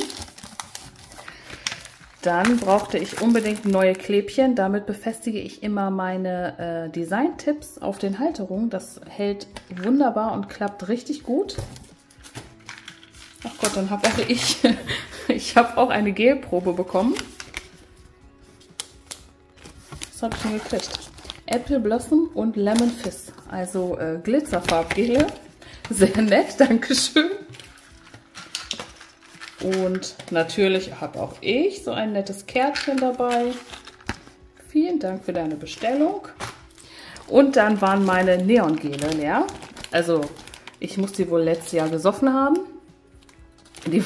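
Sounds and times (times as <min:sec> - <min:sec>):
plastic packaging clicks and rustling: 0:00.0 - 0:04.0, 0:11.5 - 0:14.7, 0:18.7 - 0:21.7, 0:27.5 - 0:30.9, 0:32.7 - 0:34.4, 0:35.7 - 0:42.2, 0:43.2 - 0:44.0
packaging clicks and taps: 0:00.1 - 0:03.8, 0:11.6 - 0:14.3, 0:27.5 - 0:30.4, 0:32.7 - 0:34.3.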